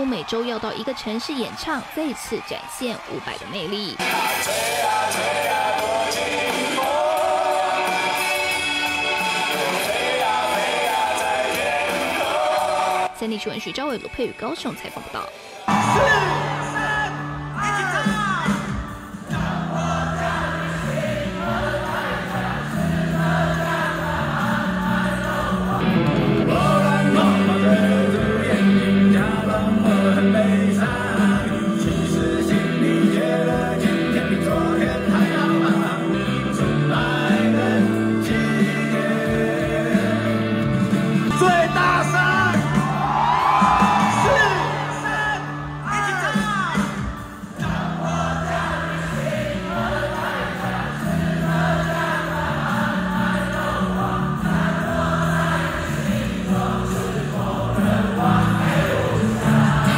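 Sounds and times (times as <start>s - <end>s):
lead singer's voice: 2.8s - 46.8s
live rock band: 4.0s - 13.1s, 15.7s - 59.9s
crowd singing along: 4.0s - 13.3s, 15.4s - 17.5s, 18.8s - 45.8s, 47.0s - 59.9s
crowd whooping and yelling: 15.5s - 18.6s, 41.9s - 46.4s.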